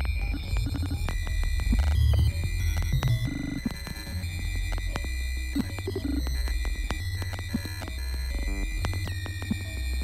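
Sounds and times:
glitchy clicks: 0.0s - 10.0s.

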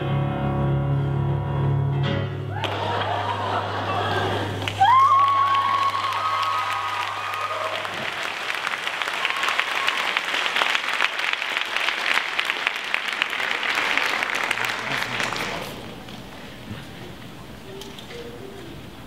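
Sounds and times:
audience applauding: 2.6s - 17.2s.

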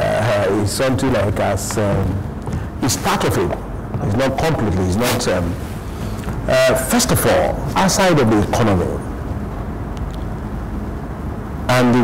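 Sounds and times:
low rumble and hiss of room noise: 0.0s - 12.0s.

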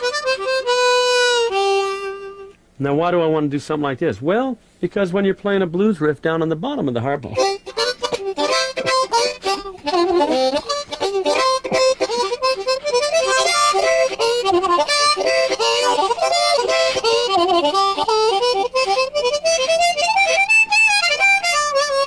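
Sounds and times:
harmonica playing blues riff: 0.0s - 2.6s, 7.3s - 22.0s.

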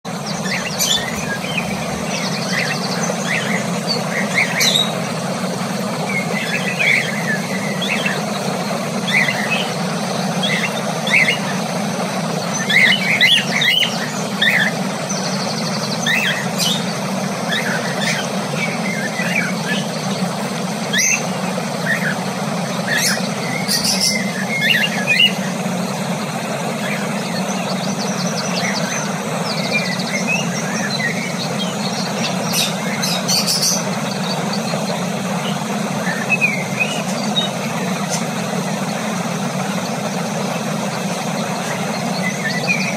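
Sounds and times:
steady low hum: 0.0s - 42.9s
cockatiels chirping: 0.2s - 38.8s, 40.4s - 42.9s.

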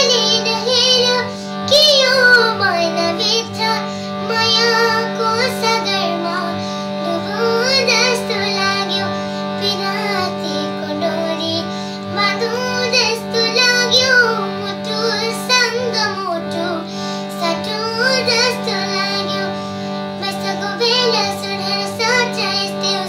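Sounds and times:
girl singing: 0.0s - 23.0s
harmonium chords: 0.0s - 23.0s.

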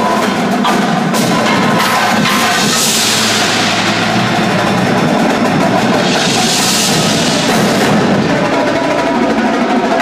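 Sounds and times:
drum kit: 0.0s - 10.0s
marching drumline: 0.0s - 10.0s
low bass note: 1.3s - 9.0s.

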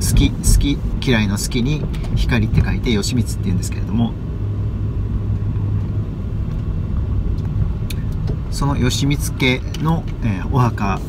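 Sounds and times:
car engine rumbling inside cabin: 0.0s - 11.0s.

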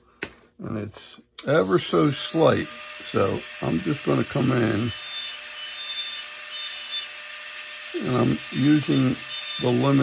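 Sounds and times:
rotary tool grinding wood: 1.6s - 10.0s.

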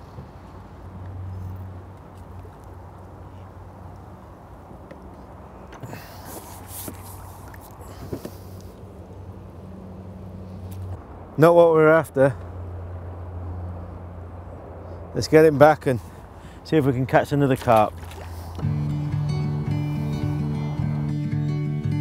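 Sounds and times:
fish splashing: 5.9s - 8.7s, 17.6s - 18.6s
water streaming off a net: 17.6s - 18.6s.

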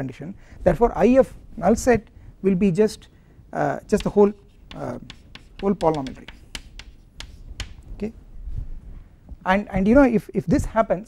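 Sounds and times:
chalk tapping blackboard: 3.9s - 8.0s.

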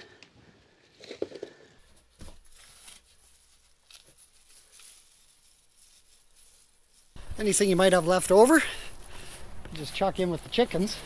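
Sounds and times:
hands rustling in soil: 1.8s - 11.0s.

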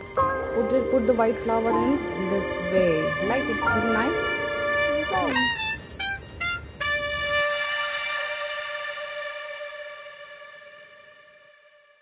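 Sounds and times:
background music notes: 0.0s - 12.0s.

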